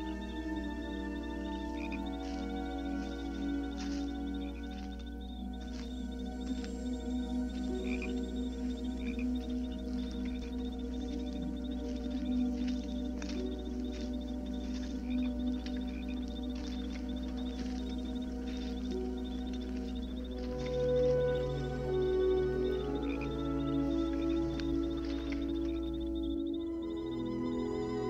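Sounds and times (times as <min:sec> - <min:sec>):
frogs croaking: 0:00.0 - 0:28.0
insects chirring: 0:00.0 - 0:28.0
soft music of held low notes: 0:00.0 - 0:28.0.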